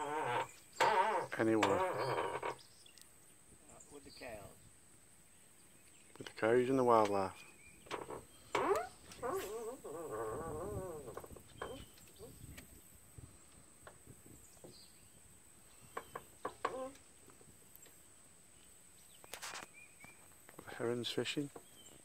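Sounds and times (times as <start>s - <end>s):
insects droning: 0.0s - 22.0s.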